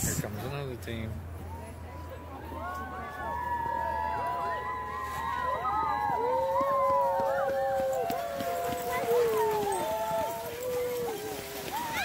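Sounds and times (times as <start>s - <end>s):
sled dogs yipping and howling: 3.3s - 12.0s.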